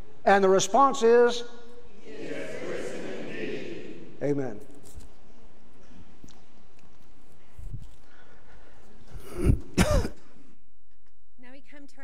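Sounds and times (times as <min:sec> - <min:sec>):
person clearing throat: 0:09.2 - 0:10.4.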